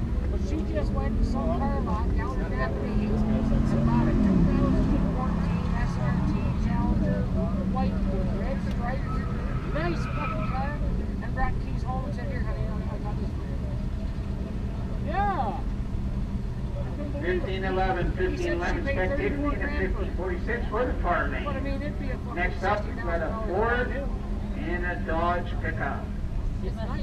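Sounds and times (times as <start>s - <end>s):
engine revving: 0.0s - 10.4s
car engines idling: 0.0s - 27.0s
crowd chatter: 0.0s - 27.0s.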